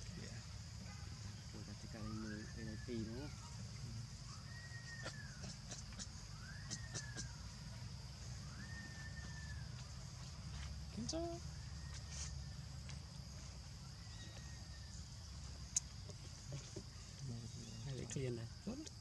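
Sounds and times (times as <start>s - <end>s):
high arched animal calls: 4.2s - 7.7s.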